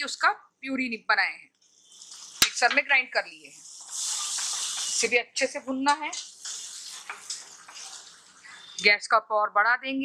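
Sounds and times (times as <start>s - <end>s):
masala sizzling in hot oil: 1.6s - 9.0s.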